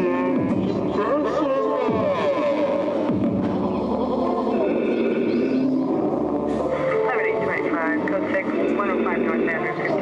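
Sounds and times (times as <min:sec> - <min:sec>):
indistinct voice through speakers: 0:00.0 - 0:10.0.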